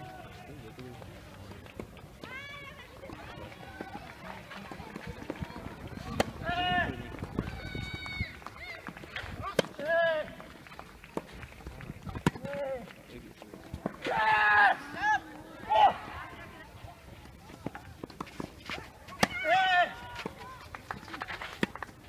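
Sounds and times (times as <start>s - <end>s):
players shouting: 2.2s - 10.4s, 13.8s - 17.8s, 18.8s - 20.7s
rackets striking tennis balls: 4.7s - 7.2s, 8.8s - 13.0s, 17.2s - 22.0s.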